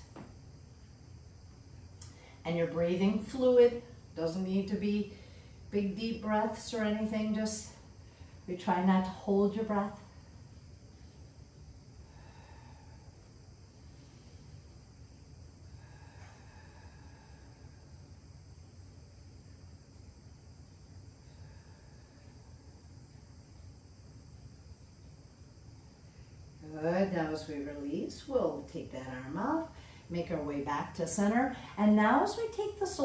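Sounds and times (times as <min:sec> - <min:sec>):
faint high-pitched whine: 0:00.0 - 0:33.0
low steady hum: 0:00.0 - 0:33.0.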